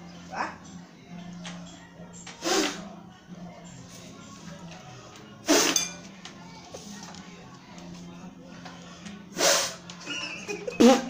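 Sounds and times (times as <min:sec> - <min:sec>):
sharp puffs of breath: 0:09.3 - 0:09.8.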